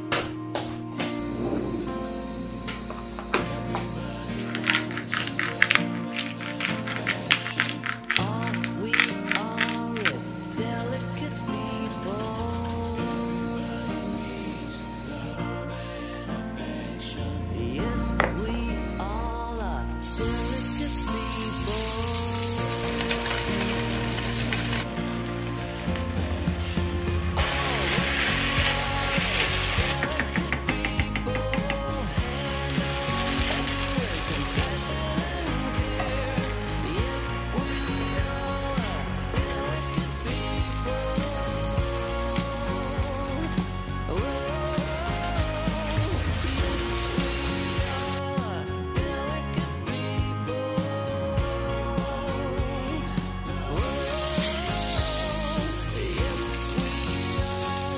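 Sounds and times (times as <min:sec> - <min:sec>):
song playing: 0:00.0 - 0:57.9
risotto sizzling in pan: 0:20.1 - 0:24.9, 0:27.4 - 0:30.8, 0:53.8 - 0:57.9.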